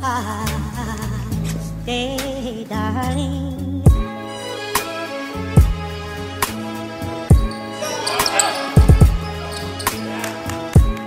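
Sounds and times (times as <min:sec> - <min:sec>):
background music: 0:00.0 - 0:11.0
basketballs bouncing on wooden floor: 0:07.4 - 0:10.1.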